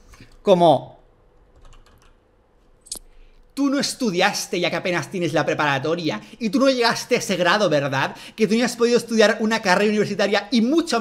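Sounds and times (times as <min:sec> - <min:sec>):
keyboard typing: 0:01.4 - 0:02.2.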